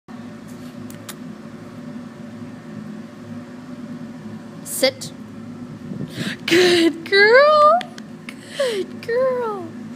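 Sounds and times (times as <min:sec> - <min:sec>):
low mechanical hum: 0:00.1 - 0:09.9.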